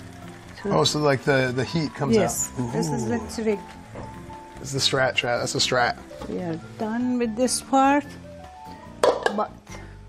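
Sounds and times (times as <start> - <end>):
background music with held tones: 0.0 - 10.0.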